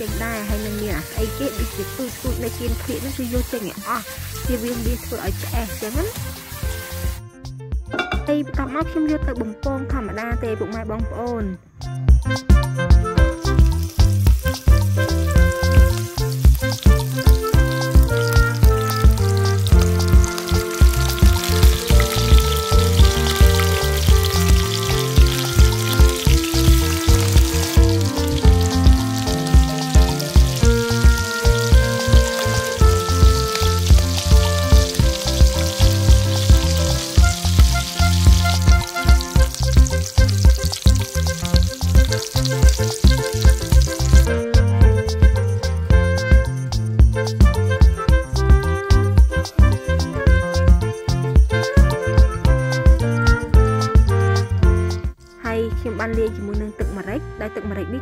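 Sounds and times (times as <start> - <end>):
hot oil sizzling in a frying pan: 0.0 - 7.2, 13.2 - 45.4
background music with steady beat: 0.0 - 58.0.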